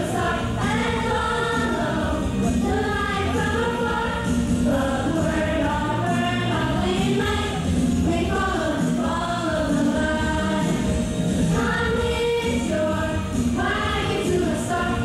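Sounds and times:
children's choir singing: 0.0s - 15.0s
musical accompaniment: 0.0s - 15.0s.

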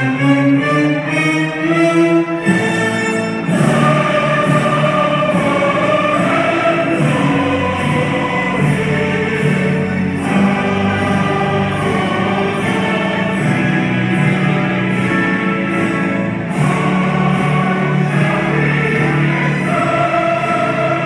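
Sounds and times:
choir singing: 0.0s - 21.0s
orchestra playing: 0.0s - 21.0s.

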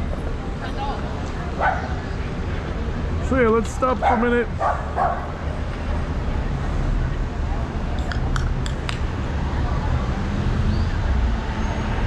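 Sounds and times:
low rumble of street noise: 0.0s - 12.0s
dog barking: 1.6s - 2.0s, 4.0s - 5.3s.

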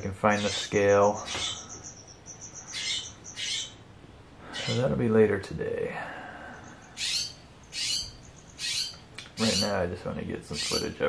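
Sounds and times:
blue jay harsh calls: 0.0s - 4.9s, 6.2s - 9.8s, 10.5s - 11.0s.

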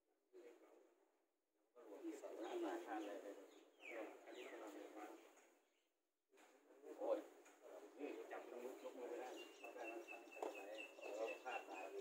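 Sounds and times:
birds calling: 2.0s - 5.4s, 8.0s - 12.0s
low murmured voices: 6.4s - 12.0s.

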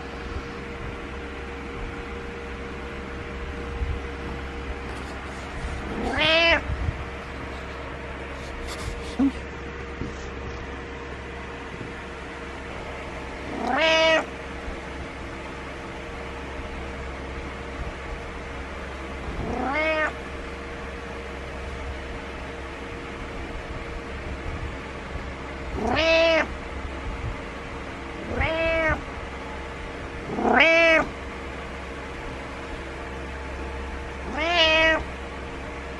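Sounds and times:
cat meowing: 5.9s - 6.8s, 13.5s - 14.3s, 19.3s - 20.2s, 25.7s - 26.6s, 28.2s - 29.1s, 30.2s - 31.1s, 34.2s - 35.1s.

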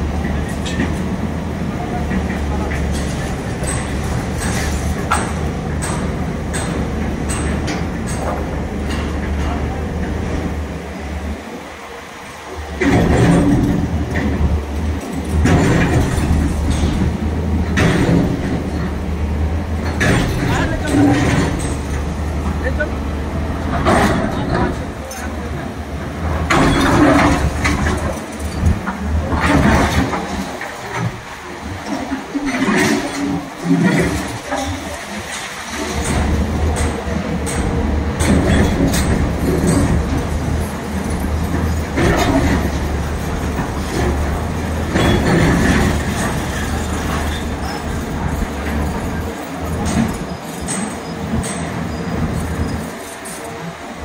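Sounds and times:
indistinct voices: 19.7s - 54.0s.

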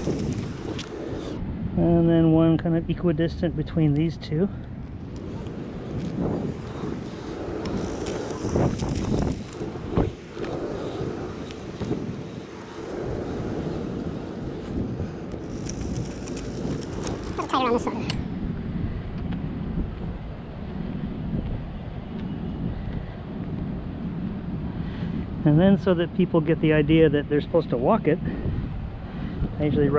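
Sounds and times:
scraping hiss: 0.0s - 1.4s, 5.0s - 18.2s
wind rumble on microphone: 0.0s - 29.9s.

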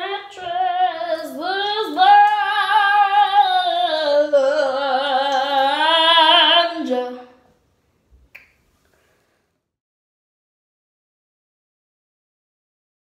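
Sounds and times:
girl singing with vibrato: 0.0s - 7.5s.

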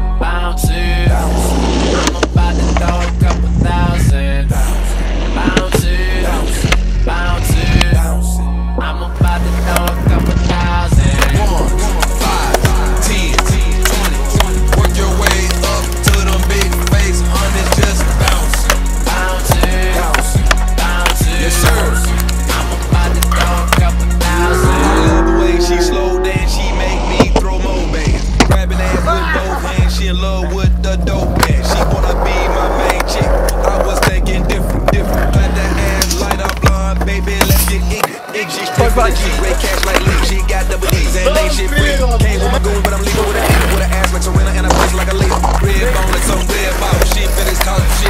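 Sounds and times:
hip-hop music with heavy bass: 0.0s - 48.0s
skateboard wheels rolling on concrete: 0.2s - 48.0s
skateboard clacks popping and landing: 2.0s - 3.6s, 5.4s - 6.0s, 9.2s - 24.0s, 28.1s - 29.5s, 31.1s - 38.4s, 42.8s - 48.0s.

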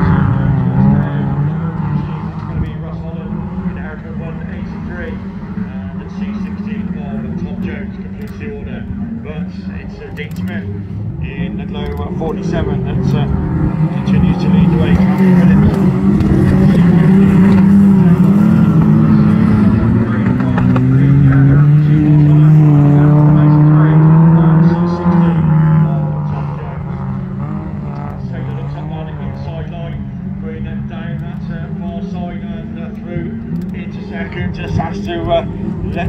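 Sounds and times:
race car engines on dirt track: 0.0s - 36.0s.

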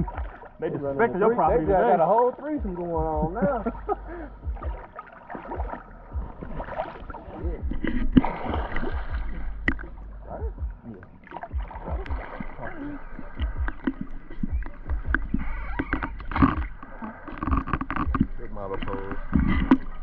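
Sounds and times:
water sloshing against camera: 0.0s - 20.0s.

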